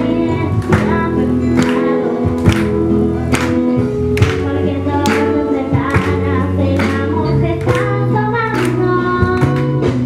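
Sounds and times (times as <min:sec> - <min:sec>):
girl singing into microphone: 0:00.0 - 0:02.9, 0:04.1 - 0:10.0
instrumental accompaniment with beat: 0:00.0 - 0:10.0.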